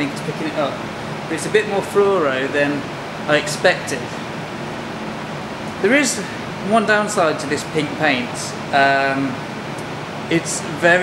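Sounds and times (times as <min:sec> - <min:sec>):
man speaking: 0:00.0 - 0:04.2, 0:05.8 - 0:09.4, 0:10.3 - 0:11.0
steady fan hiss: 0:00.0 - 0:11.0.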